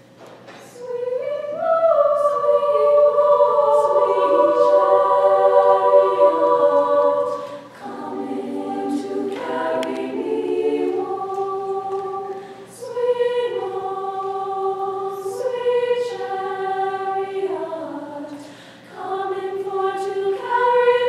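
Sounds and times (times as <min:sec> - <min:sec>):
female choir singing a cappella: 0:00.6 - 0:21.0
breath: 0:12.4 - 0:12.7, 0:18.4 - 0:18.9.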